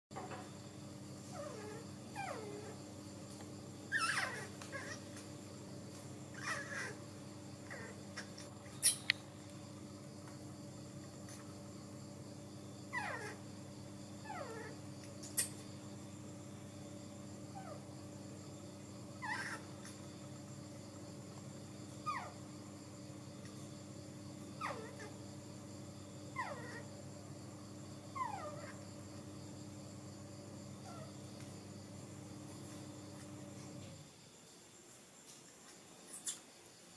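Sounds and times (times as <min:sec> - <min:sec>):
steady low hum: 0:00.2 - 0:34.1
baby monkey calling: 0:03.9 - 0:05.2, 0:06.3 - 0:07.0, 0:07.6 - 0:09.2, 0:12.9 - 0:13.4, 0:19.2 - 0:20.0, 0:22.0 - 0:22.3, 0:24.6 - 0:25.1.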